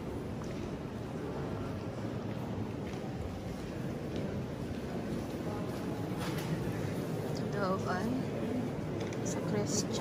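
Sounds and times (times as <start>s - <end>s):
reverberant murmur of voices: 0.0s - 10.0s.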